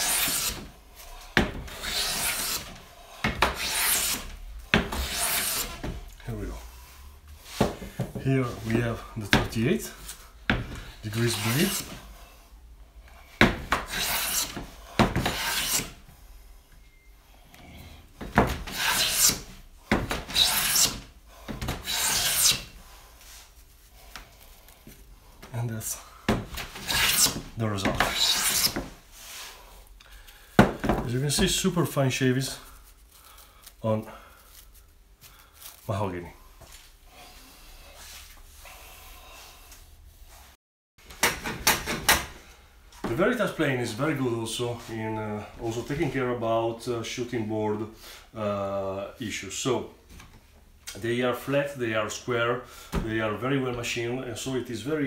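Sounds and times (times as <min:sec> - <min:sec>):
hand plane rasping hiss: 0:00.0 - 0:05.8, 0:13.8 - 0:16.0, 0:18.7 - 0:19.5, 0:20.2 - 0:23.4, 0:26.8 - 0:27.4, 0:28.0 - 0:29.7.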